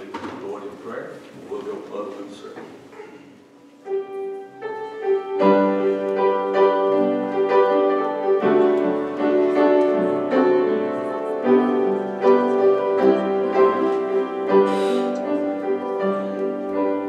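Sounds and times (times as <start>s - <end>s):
piano playing slow chords: 3.6s - 17.0s.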